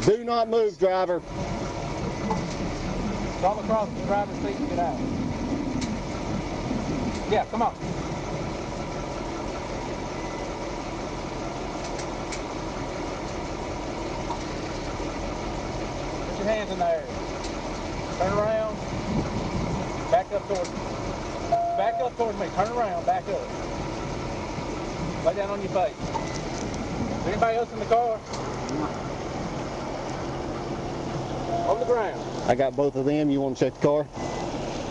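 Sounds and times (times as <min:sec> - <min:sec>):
car engine idling: 0:00.0 - 0:34.9.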